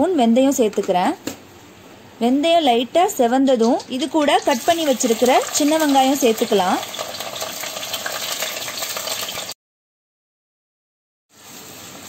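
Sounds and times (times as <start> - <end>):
shallots sizzling in hot oil: 3.2 - 9.6.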